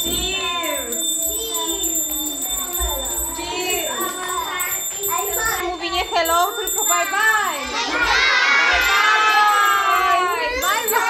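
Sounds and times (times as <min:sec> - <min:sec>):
children calling and shouting: 0:00.0 - 0:11.0
long drawn-out group shout: 0:07.8 - 0:11.0.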